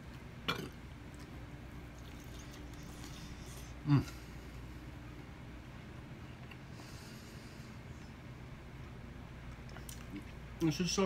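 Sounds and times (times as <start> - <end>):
low room hum: 0.0 - 11.0
man's low vocal sound: 3.8 - 4.3.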